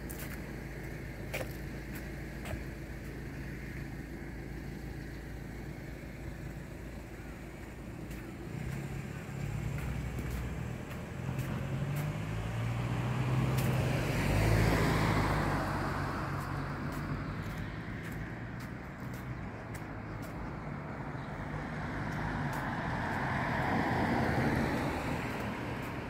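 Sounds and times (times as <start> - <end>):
car driving past: 8.5 - 18.6, 20.2 - 26.0.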